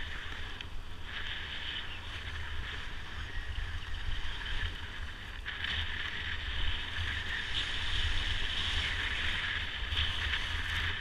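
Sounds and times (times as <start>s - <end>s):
skis scraping over snow: 0.0s - 11.0s
wind buffeting microphone: 0.0s - 11.0s.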